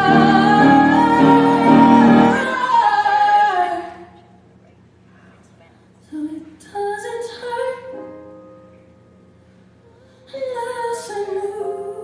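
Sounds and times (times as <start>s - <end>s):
ballad with woman singing: 0.0s - 4.1s, 10.3s - 12.0s.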